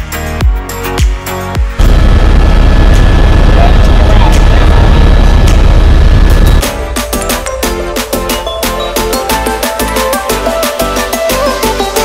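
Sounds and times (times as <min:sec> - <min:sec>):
helicopter rotor and turbine din: 0:01.8 - 0:06.7.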